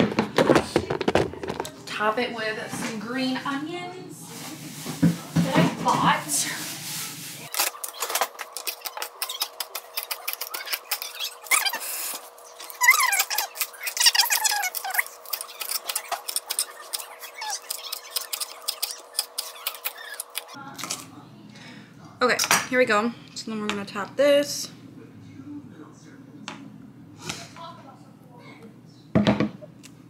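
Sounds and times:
squeaks: 7.6 - 20.6.

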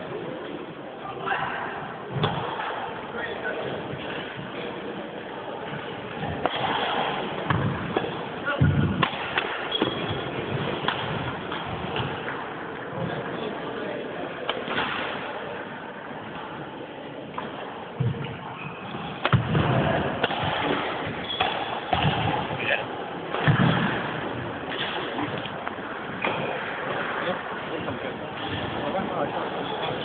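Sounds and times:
sports hall background noise: 0.0 - 30.0
racket striking shuttlecock: 8.9 - 12.4.

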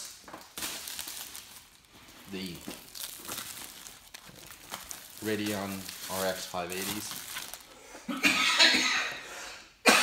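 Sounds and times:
plastic shrink wrap crinkling: 0.0 - 8.0.

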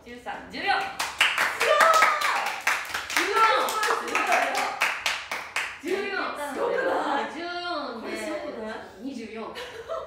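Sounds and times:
people clapping hands: 0.8 - 6.1.

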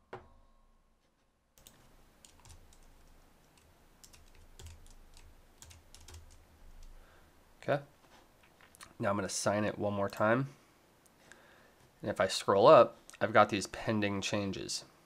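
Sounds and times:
computer keyboard typing: 1.6 - 7.0.

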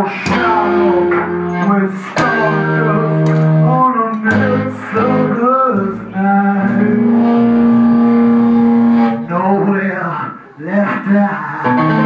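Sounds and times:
rock band holding long note: 0.0 - 9.4, 11.6 - 12.0.

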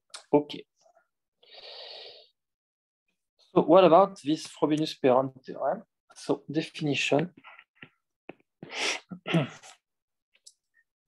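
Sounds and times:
man clearing his throat: 9.1 - 9.8.

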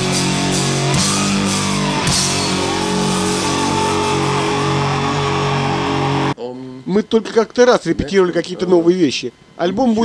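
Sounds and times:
distorted electric guitars: 0.0 - 6.4
live rock band playing: 0.0 - 6.4.

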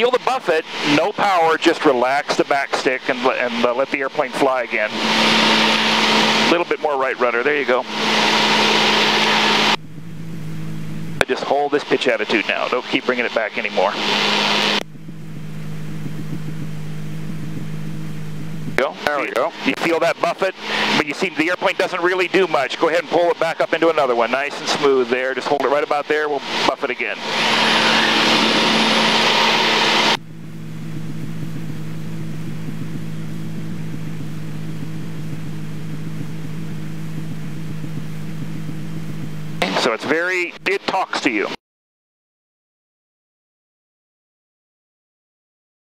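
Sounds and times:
airplane engine humming: 0.0 - 41.6
loud rushing noise: 4.7 - 11.2, 26.4 - 30.4
rush of air noise: 26.4 - 36.7.

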